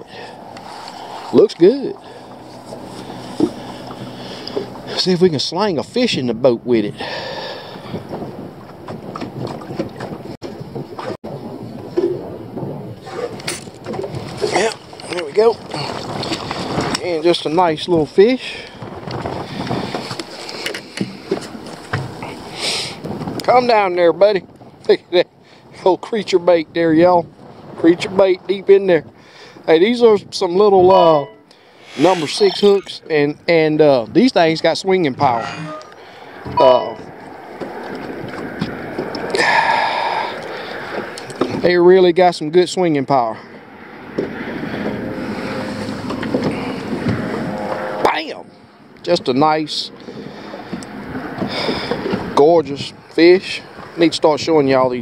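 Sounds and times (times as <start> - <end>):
wind buffeting microphone: 0.0 - 41.7, 43.4 - 55.0
water slapping boat hull: 0.1 - 6.1, 7.0 - 31.7, 34.9 - 41.6, 43.5 - 48.0, 48.8 - 55.0
short sliding sound: 31.2 - 32.9.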